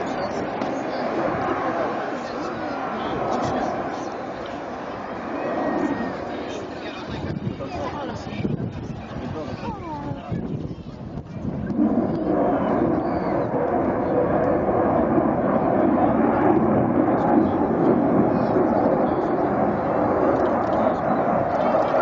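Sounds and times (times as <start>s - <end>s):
fighter jet roar: 0.0s - 22.0s.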